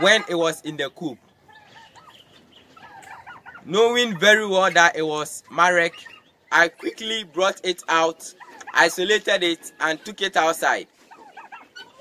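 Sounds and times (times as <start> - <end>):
poultry calls: 0.0 - 12.0.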